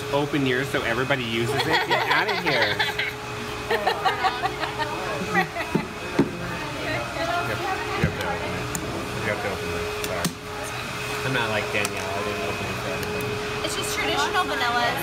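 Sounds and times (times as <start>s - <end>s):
steady hum: 0.0s - 15.0s
indistinct chatter: 0.1s - 15.0s.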